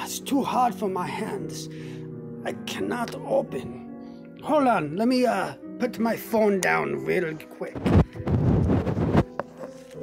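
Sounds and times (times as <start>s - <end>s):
rubbing against microphone: 7.7s - 10.0s.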